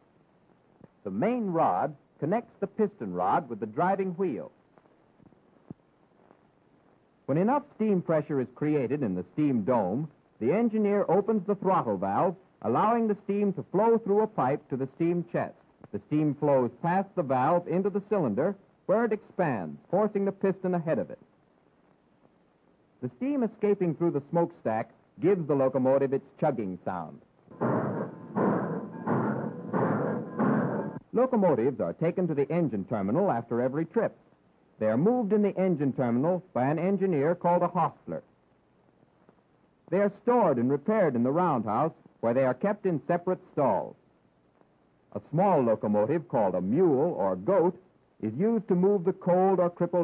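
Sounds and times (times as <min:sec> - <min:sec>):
faint steady hiss: 0:00.0 - 0:50.0
steam locomotive chugging: 0:27.5 - 0:31.0.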